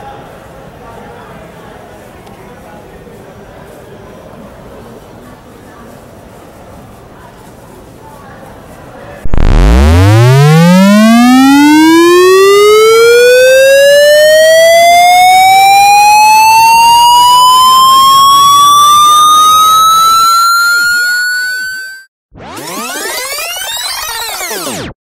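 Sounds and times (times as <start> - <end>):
buzzy electronic tone rising: 9.2 - 24.9.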